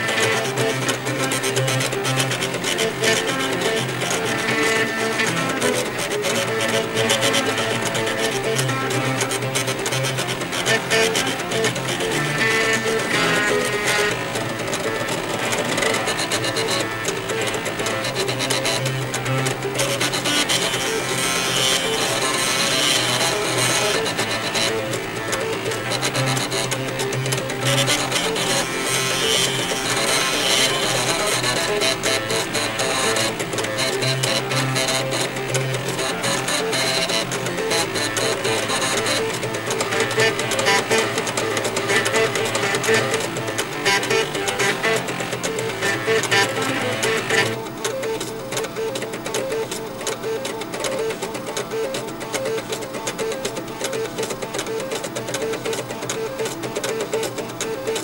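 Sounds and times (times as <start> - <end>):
floppy drives playing buzzy tune: 0.0 - 58.0.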